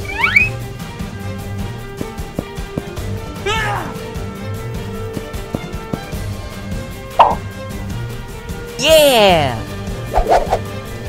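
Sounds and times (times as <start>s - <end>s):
background music: 0.0s - 11.0s
high-pitched cheering voice: 8.8s - 9.7s.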